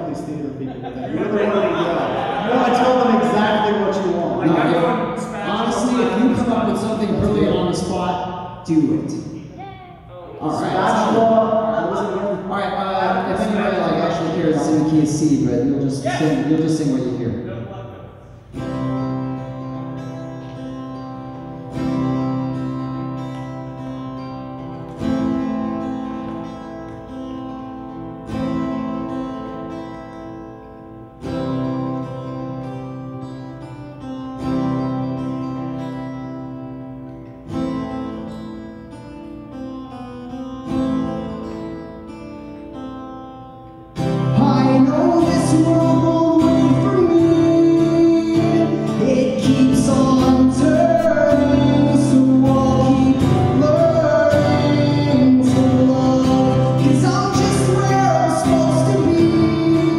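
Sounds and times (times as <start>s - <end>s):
acoustic guitar chords: 0.0s - 59.9s
man singing: 10.5s - 12.2s, 44.3s - 59.9s.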